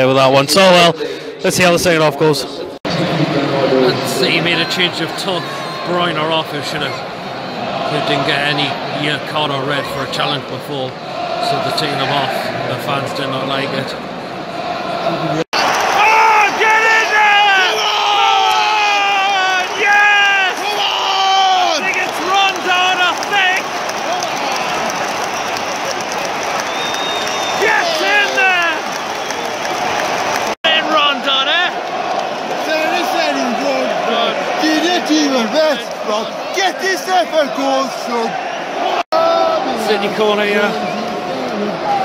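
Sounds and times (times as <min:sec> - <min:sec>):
crowd noise din: 0:00.9 - 0:42.0
crowd chanting and singing: 0:10.2 - 0:12.8, 0:14.2 - 0:15.4.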